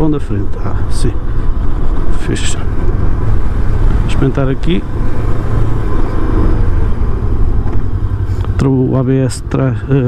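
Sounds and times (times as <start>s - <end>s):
motorcycle engine rumble: 0.0s - 10.0s.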